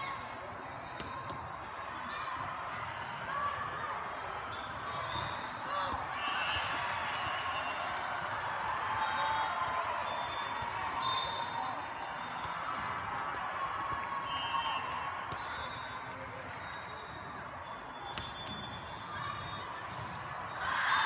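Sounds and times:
chatter of many voices echoing: 0.0s - 21.0s.

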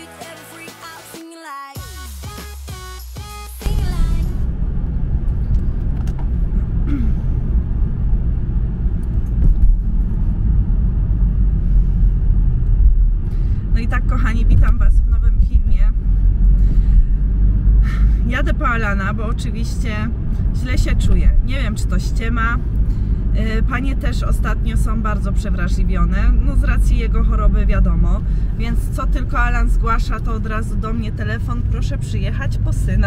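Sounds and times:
music: 0.0s - 4.4s
road and engine rumble in car: 3.6s - 33.0s.

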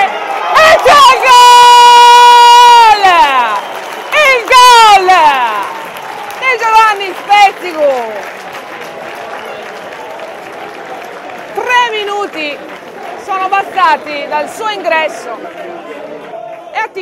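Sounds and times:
commentator's long goal shout: 0.0s - 3.6s.

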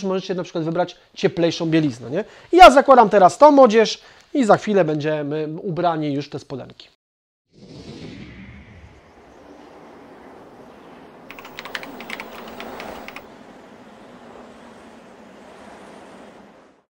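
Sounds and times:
steady noise bed: 11.3s - 13.2s
keyboard typing clicks: 11.3s - 13.3s.

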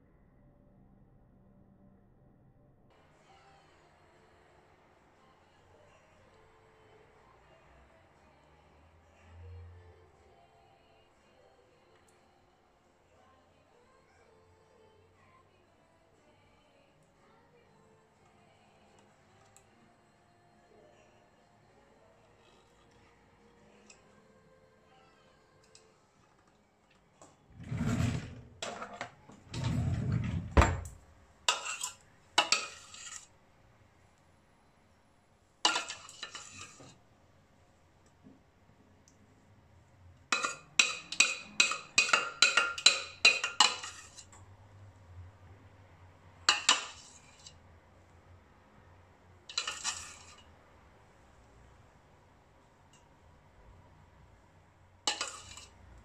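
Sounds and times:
metal spoon scraping steel pot: 27.6s - 33.3s, 35.7s - 37.0s, 40.3s - 44.4s, 46.5s - 47.6s, 49.5s - 50.5s, 55.1s - 55.8s.

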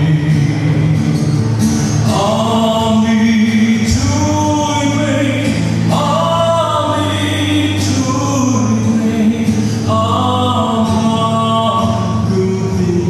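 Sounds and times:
man singing gospel song: 0.0s - 1.0s, 2.0s - 13.0s
acoustic guitar strumming: 0.0s - 13.0s.

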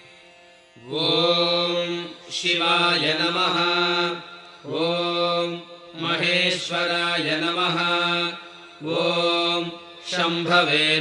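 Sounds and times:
man chanting om: 0.8s - 11.0s.

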